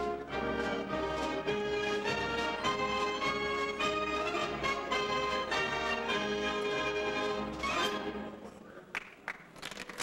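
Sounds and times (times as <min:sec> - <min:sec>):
wind band playing sustained chords: 0:00.0 - 0:08.5.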